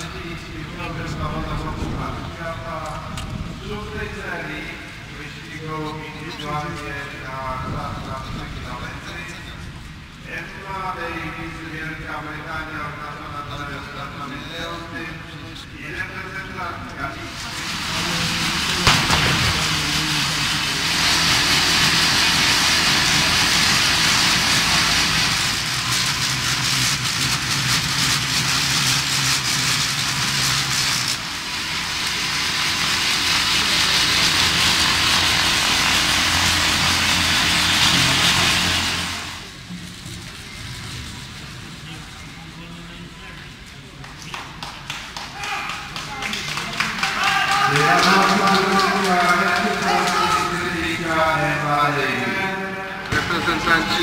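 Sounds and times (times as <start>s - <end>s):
low hum: 13.8s - 43.0s
bicycle trainer whirring hiss: 17.2s - 18.8s, 19.7s - 42.1s.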